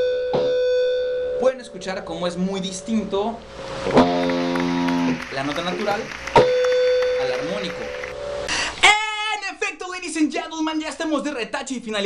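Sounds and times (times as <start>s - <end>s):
electric guitar harmonic ringing: 3.5s - 8.5s
man speaking loudly: 5.2s - 6.1s, 8.8s - 12.0s.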